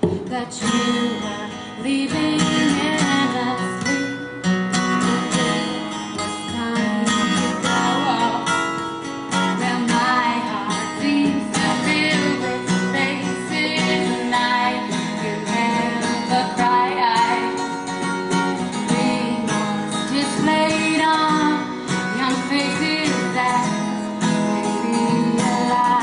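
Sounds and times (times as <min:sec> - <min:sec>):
acoustic guitar strumming chords: 0:00.0 - 0:26.0.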